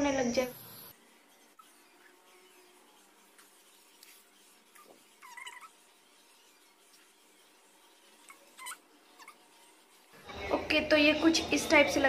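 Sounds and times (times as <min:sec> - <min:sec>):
faint wavering animal call: 0:04.8 - 0:05.8.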